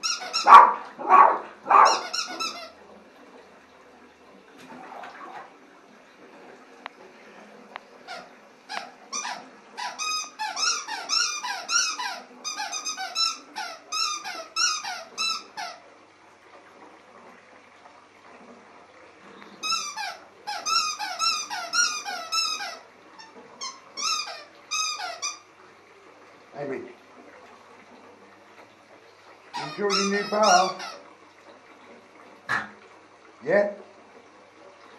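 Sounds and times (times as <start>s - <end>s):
rubber squeaky toy squeaking: 0.0s - 0.5s, 1.8s - 2.7s, 8.1s - 15.8s, 19.6s - 25.4s, 29.6s - 31.0s.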